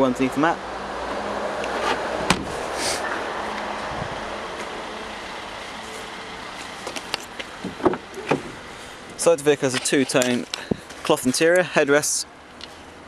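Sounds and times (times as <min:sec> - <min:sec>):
car door clicks: 0:01.8 - 0:02.5.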